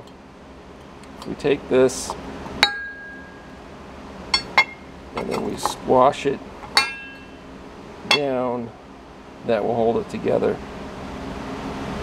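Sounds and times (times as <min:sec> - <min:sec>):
metallic clinks of steel plates: 0:06.7 - 0:07.4.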